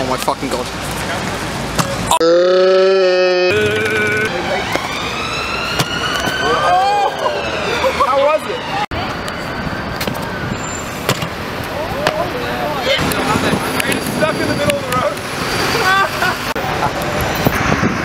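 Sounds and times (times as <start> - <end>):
street traffic: 0.0 - 18.0
emergency siren wailing: 2.2 - 10.6.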